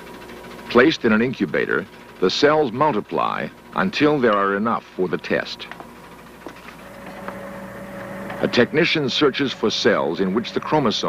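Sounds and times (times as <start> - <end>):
low steady hum: 3.4 - 11.0
sustained tone: 6.8 - 11.0.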